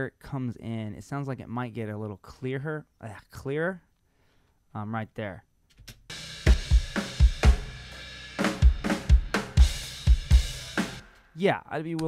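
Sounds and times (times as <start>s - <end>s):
snare and cymbal wash: 6.1s - 11.4s.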